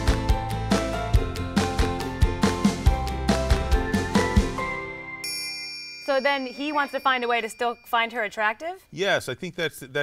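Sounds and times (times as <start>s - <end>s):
shimmering ding sparkle effect: 4.8s - 8.5s.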